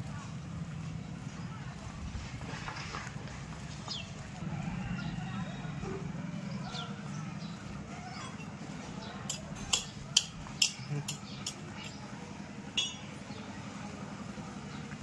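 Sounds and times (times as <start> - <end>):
faint distant voices: 0.0 - 15.0
sharp clinks: 9.2 - 12.0, 12.8 - 13.2.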